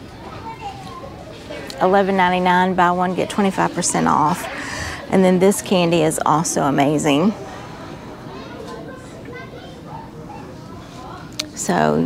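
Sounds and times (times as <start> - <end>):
faint background voices: 0.0 - 12.0
woman speaking: 1.7 - 7.4, 11.4 - 12.0.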